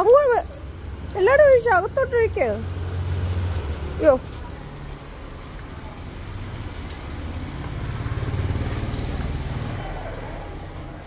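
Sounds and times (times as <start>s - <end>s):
vehicle engine passing: 0.1s - 11.0s.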